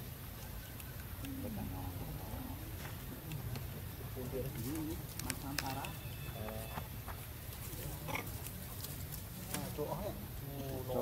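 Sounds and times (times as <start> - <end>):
monkey calls: 3.9 - 8.6.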